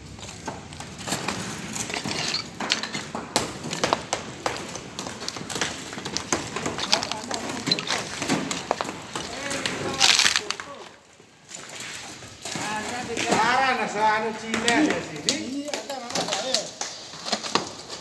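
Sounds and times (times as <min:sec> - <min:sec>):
bricks and rubble clattering: 0:00.0 - 0:10.6
people talking: 0:06.8 - 0:08.0, 0:09.2 - 0:11.0, 0:12.6 - 0:16.8.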